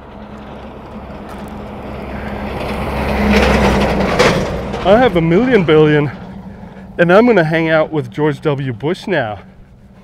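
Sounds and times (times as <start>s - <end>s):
truck passing by: 0.0s - 10.0s.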